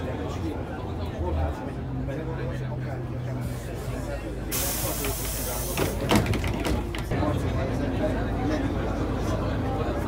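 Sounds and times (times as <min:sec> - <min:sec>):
diesel engine hum: 0:00.0 - 0:10.0
compressed air hiss of bus doors: 0:03.7 - 0:06.3.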